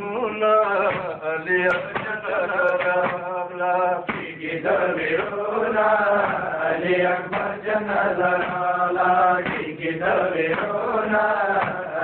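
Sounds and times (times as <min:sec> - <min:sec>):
voices chanting a lament: 0:00.0 - 0:12.0.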